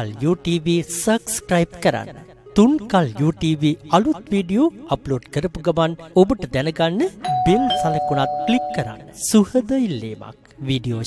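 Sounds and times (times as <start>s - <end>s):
two-note bell chime: 7.3s - 9.3s.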